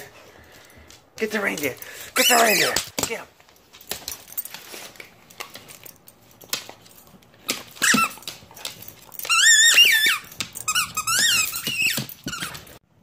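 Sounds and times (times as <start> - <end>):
dog toy squeaking: 2.2 - 2.8, 7.8 - 8.3, 9.2 - 12.8.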